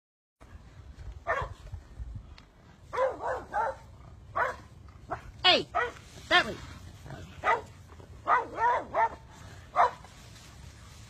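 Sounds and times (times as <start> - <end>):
dog barking: 1.2 - 1.6, 2.9 - 6.0, 7.4 - 10.0.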